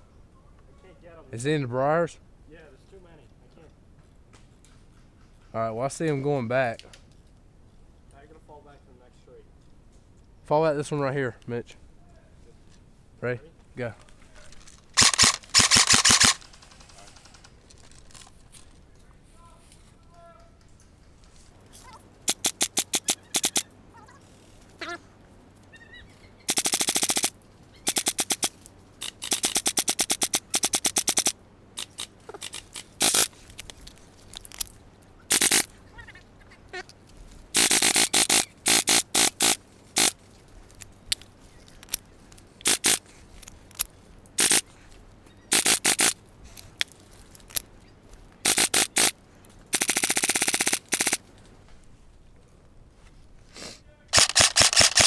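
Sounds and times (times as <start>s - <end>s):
airsoft rifle firing bursts: 15.0s - 17.6s, 26.5s - 27.3s, 27.9s - 28.5s, 37.6s - 40.2s, 45.5s - 46.2s, 48.4s - 49.1s, 49.7s - 51.2s, 54.1s - 55.0s.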